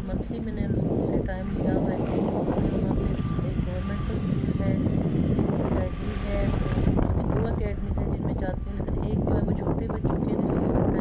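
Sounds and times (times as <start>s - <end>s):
faint voices: 0.0s - 11.0s
vehicle driving rumble: 0.0s - 11.0s.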